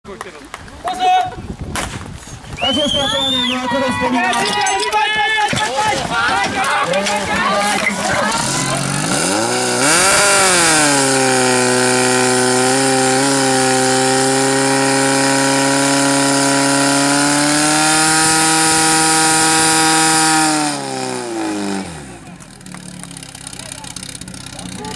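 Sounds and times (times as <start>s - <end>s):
fire pump engine revving: 7.6s - 24.9s.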